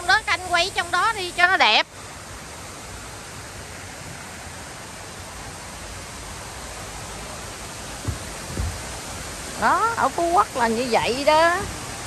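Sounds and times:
steady outdoor hiss: 0:00.0 - 0:12.0
short low thumps: 0:08.0 - 0:09.2.

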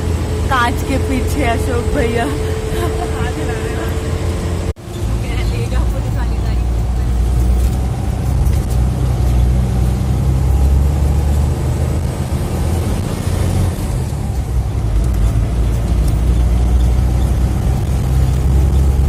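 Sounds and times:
bus engine drone: 0:00.0 - 0:19.0
road noise: 0:00.0 - 0:19.0.

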